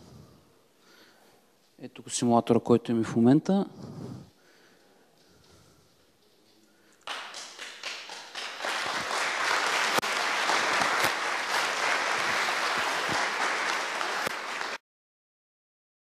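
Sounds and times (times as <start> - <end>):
audience applause: 7.0 - 14.8.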